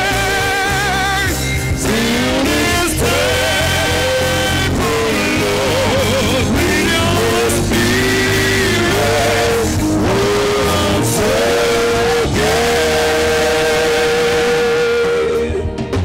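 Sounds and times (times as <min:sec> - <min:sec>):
choir singing: 0:00.0 - 0:15.7
full band playing: 0:00.0 - 0:16.0.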